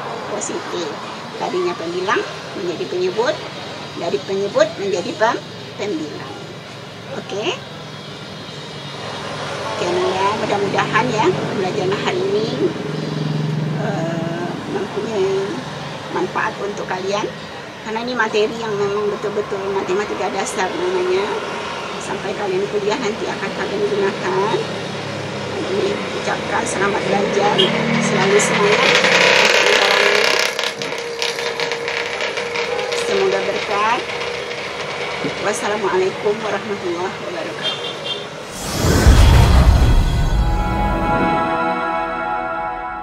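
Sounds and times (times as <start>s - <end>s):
woman speaking: 0.3s - 3.4s, 4.0s - 6.4s, 7.2s - 7.6s, 9.8s - 12.8s, 13.8s - 21.4s, 22.1s - 24.6s, 25.6s - 30.3s, 33.1s - 34.0s, 35.4s - 37.6s
passing vehicle engine: 8.8s - 16.4s, 23.0s - 35.4s, 38.4s - 42.4s.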